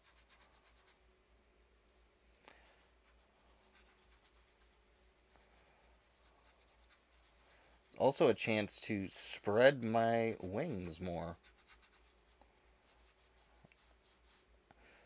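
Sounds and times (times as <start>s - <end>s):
paintbrush scratching on surface: 0.0s - 1.1s, 2.6s - 14.5s.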